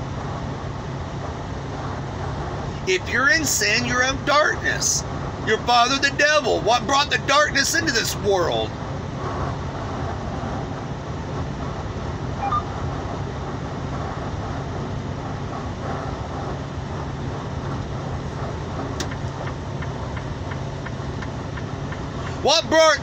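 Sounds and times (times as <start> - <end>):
road and engine noise in car cabin: 0.0 - 23.0.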